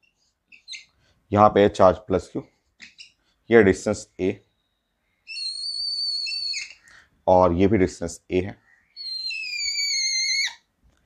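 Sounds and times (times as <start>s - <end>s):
whiteboard marker squeaking: 0.0s - 1.0s, 5.3s - 6.9s, 9.0s - 10.6s.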